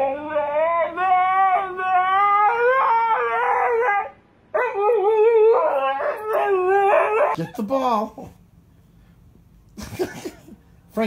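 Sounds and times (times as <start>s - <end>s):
dog howling: 0.0s - 7.4s.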